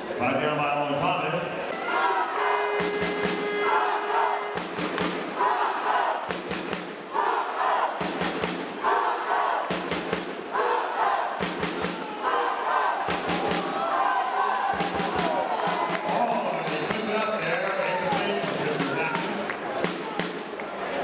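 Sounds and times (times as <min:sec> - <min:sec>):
crowd chanting: 0:01.4 - 0:21.0.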